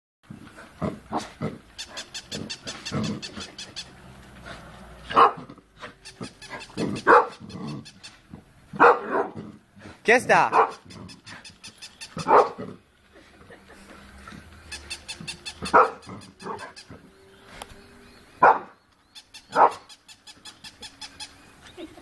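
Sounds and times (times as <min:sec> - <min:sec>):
dog growling: 0:00.4 - 0:08.0, 0:09.0 - 0:10.0, 0:10.7 - 0:12.9, 0:15.2 - 0:17.2
dog barking: 0:05.1 - 0:05.5, 0:06.2 - 0:07.9, 0:08.8 - 0:09.4, 0:10.4 - 0:11.2, 0:12.2 - 0:12.6, 0:15.6 - 0:16.8, 0:18.4 - 0:18.8, 0:19.5 - 0:19.9.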